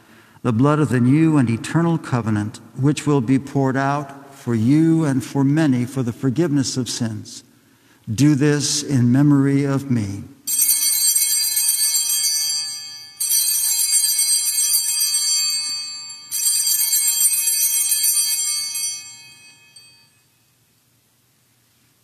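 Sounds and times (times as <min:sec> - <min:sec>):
altar bells ringing: 0:10.5 - 0:20.6.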